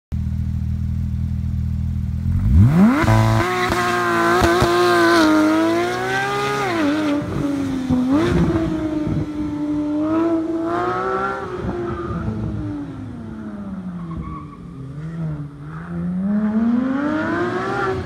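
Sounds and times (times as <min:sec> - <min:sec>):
car engine revving: 0:01.6 - 0:18.0.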